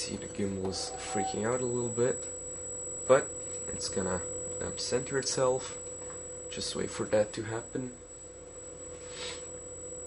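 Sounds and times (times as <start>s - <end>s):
electrical hum: 0.0s - 10.0s
faint high whine: 0.0s - 10.0s.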